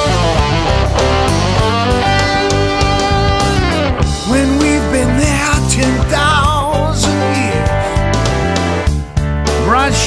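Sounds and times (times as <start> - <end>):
electric guitar bending note: 0.0 - 9.0
bass guitar: 0.0 - 10.0
steady drum beat: 0.0 - 10.0.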